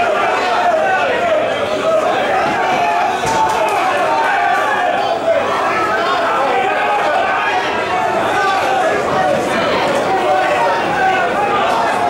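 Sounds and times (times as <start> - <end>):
crowd din of voices: 0.0 - 12.0.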